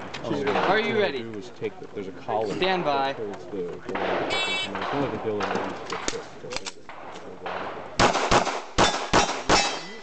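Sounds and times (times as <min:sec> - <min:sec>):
pistol shots: 0:04.0 - 0:10.0.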